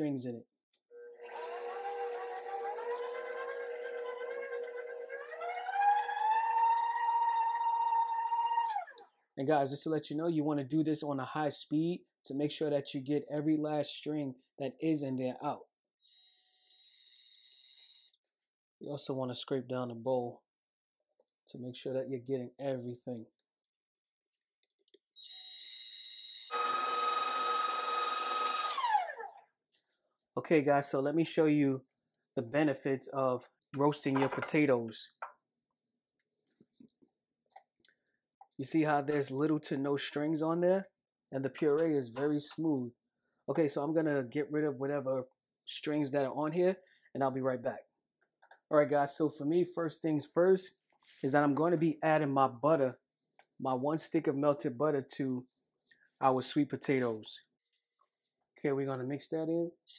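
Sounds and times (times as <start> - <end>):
stand mixer motor whining: 1.0 - 6.8, 26.5 - 29.3.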